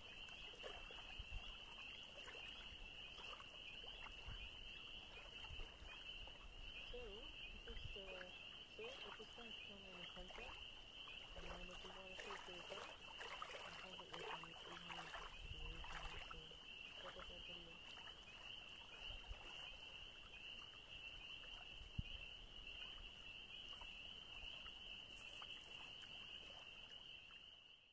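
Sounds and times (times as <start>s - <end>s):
soft splashing or rustling: 0.0s - 27.5s
insects trilling: 0.0s - 27.7s.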